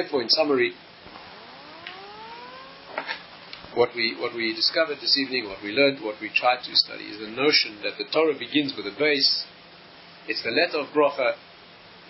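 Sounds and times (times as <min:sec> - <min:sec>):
siren-like wail rising in pitch: 0:01.1 - 0:03.5.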